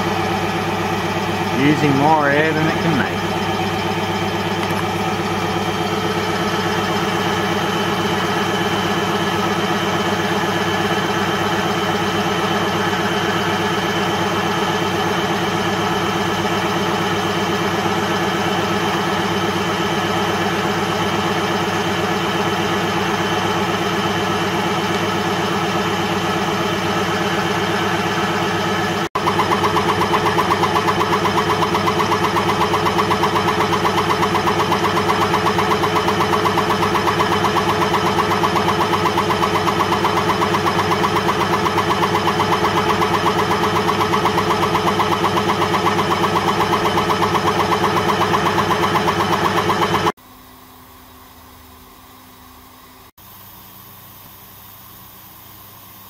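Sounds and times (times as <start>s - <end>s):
air compressor pulsing: 0.0s - 50.2s.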